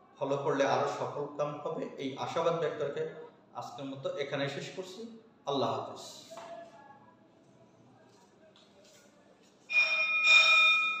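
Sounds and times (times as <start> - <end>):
bell-like ringing tones: 9.7 - 11.0.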